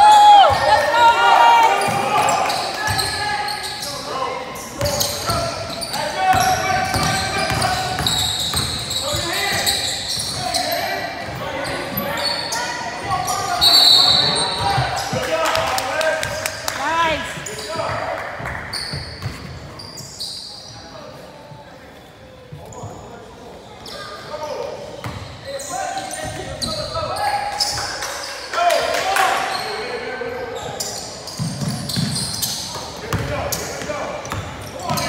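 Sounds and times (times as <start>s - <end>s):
voices echoing in a hall: 0.0s - 35.0s
ball bouncing on hardwood court: 31.4s - 32.2s.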